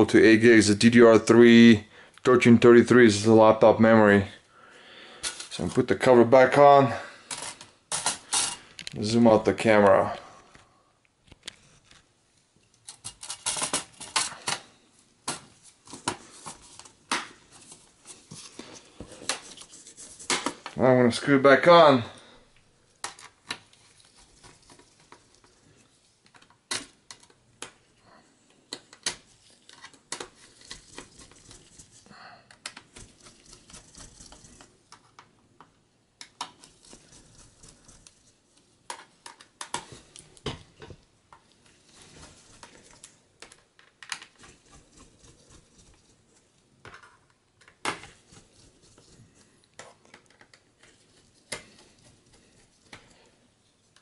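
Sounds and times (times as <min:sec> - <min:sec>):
soft scraping and handling: 0:05.2 - 0:35.3, 0:36.5 - 0:54.0.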